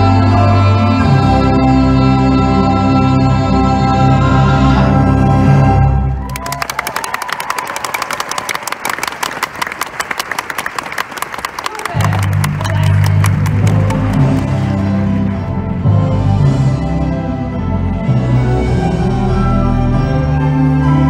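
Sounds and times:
orchestra playing chords: 0.0s - 6.4s, 11.6s - 21.0s.

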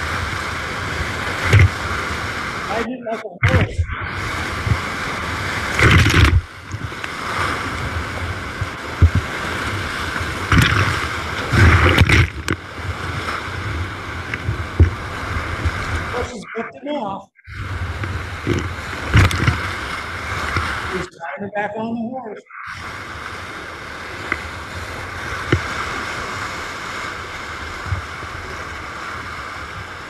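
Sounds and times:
waves breaking over raft: 0.0s - 30.0s
whitewater roaring: 0.0s - 30.0s.

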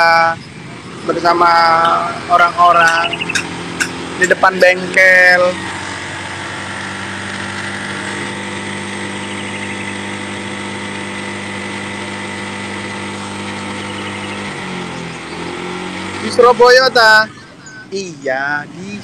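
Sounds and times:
engine humming steadily: 0.0s - 19.0s.

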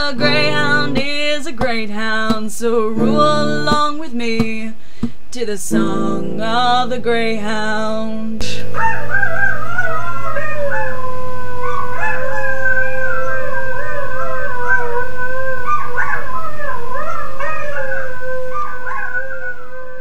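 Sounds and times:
dogs howling: 8.8s - 20.0s.

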